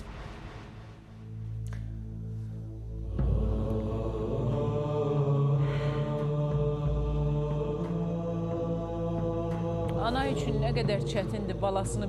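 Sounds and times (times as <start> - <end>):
slow droning background music: 0.0 - 12.0.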